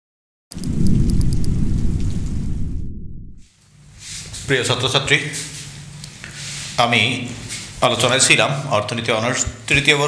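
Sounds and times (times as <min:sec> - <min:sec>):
deep loud rumble: 0:00.5 - 0:03.5.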